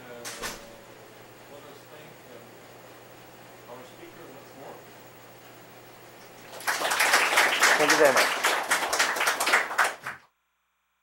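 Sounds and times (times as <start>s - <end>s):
audience applauding: 6.4s - 10.3s.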